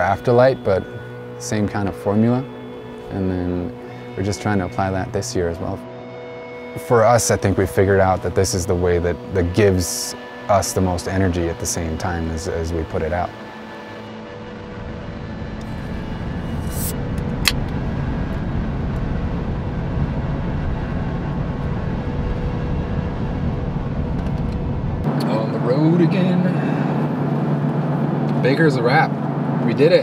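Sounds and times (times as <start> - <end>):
road and engine rumble in car: 15.6 - 30.0.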